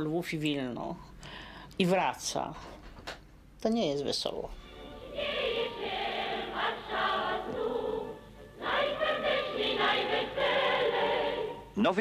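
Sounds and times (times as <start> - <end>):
choir singing with accompaniment: 4.6 - 11.8.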